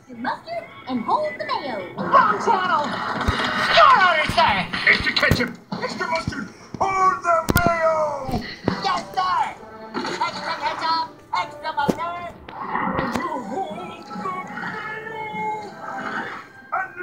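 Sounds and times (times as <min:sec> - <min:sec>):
background music: 0:00.0 - 0:17.0
voices shouting and grunting: 0:00.5 - 0:17.0.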